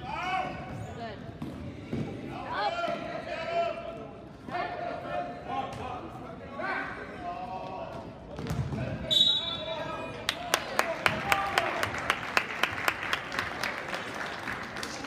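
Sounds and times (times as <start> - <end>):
crowd voices: 0.0 - 12.0
basketball bouncing on gym floor: 8.4 - 8.9
referee's whistle: 9.0 - 9.8.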